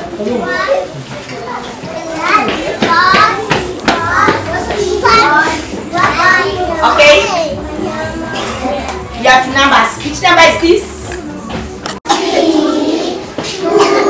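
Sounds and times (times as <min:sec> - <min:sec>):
young children chattering: 0:00.0 - 0:10.2, 0:11.0 - 0:14.0.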